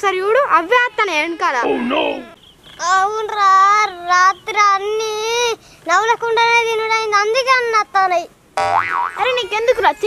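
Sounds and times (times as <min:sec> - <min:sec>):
boy wailing: 0:09.2 - 0:10.0.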